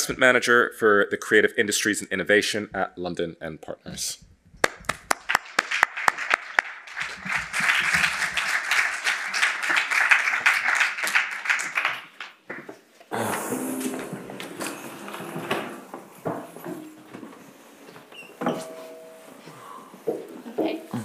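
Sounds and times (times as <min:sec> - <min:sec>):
audience clapping: 0:04.6 - 0:14.6.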